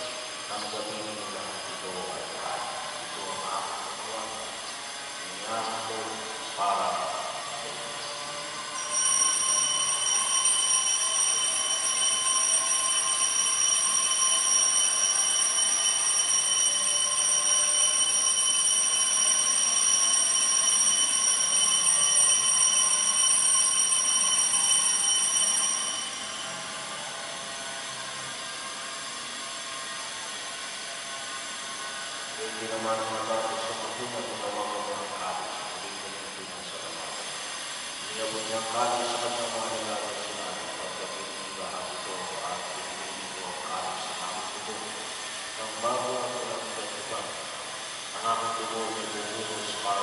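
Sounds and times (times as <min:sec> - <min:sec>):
high-pitched whistling tone: 0:00.0 - 0:30.7.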